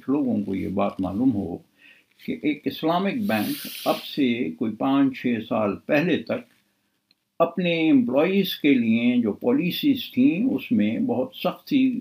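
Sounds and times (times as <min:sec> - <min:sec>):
man talking: 0:00.0 - 0:01.6, 0:02.2 - 0:06.5, 0:07.4 - 0:12.0
sustained hiss: 0:01.8 - 0:04.6.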